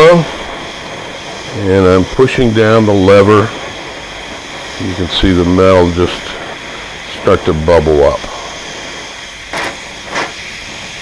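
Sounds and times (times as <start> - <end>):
cutting torch hissing: 0.0 - 11.0
torch crackles: 0.0 - 11.0.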